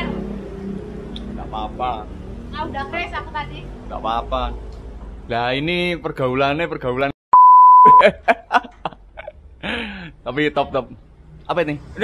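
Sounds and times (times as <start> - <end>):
censor bleep: 7.3 - 8.0.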